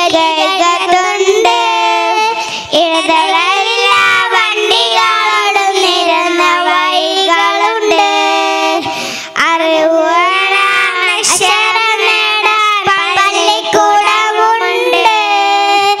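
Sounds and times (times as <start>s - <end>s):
girls singing into microphones: 0.0s - 16.0s.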